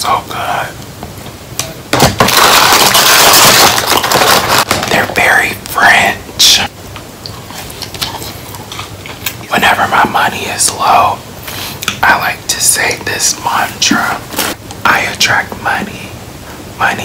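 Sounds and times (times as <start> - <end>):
man whispering: 0.0 - 0.8, 4.9 - 6.7, 9.4 - 11.2, 12.0 - 16.2, 16.8 - 17.0.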